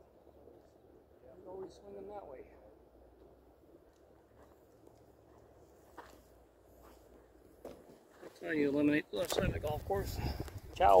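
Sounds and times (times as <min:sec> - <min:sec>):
footsteps on grass: 0:04.4 - 0:08.5.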